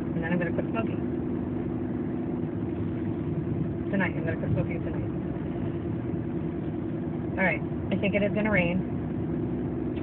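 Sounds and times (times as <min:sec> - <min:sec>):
car engine hum from inside cabin: 0:00.0 - 0:10.0.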